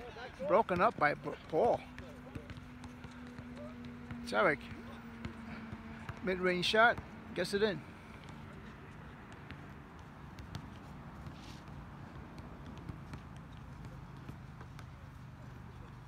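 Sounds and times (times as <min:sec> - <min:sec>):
basketball bouncing: 0:00.5 - 0:07.1, 0:08.2 - 0:15.2.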